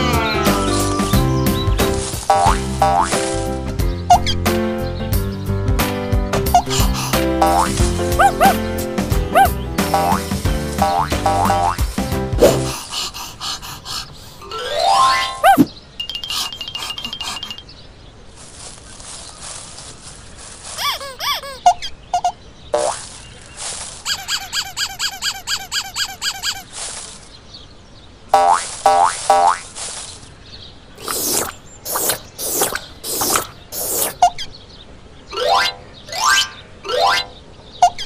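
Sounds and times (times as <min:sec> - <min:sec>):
cartoon music: 0:02.3 - 0:03.2, 0:06.4 - 0:11.9, 0:14.4 - 0:17.6, 0:24.1 - 0:26.6.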